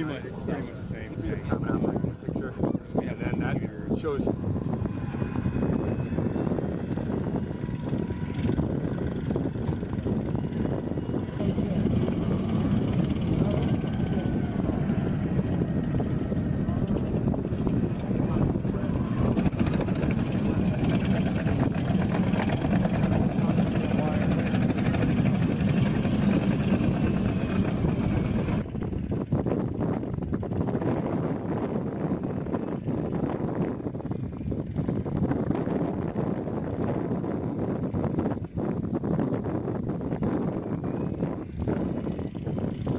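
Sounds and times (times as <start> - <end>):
faint wavering whine: 0.0 - 22.7
tank engine and tracks rumbling: 0.0 - 42.9.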